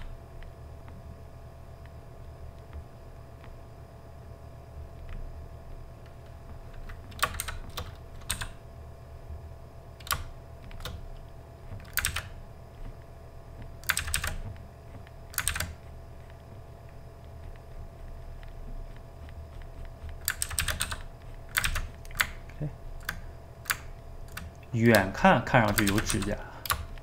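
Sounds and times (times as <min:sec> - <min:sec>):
low steady hum: 0:00.0 - 0:27.0
keyboard and mouse clicks: 0:06.0 - 0:08.6, 0:10.0 - 0:13.0, 0:13.6 - 0:27.0.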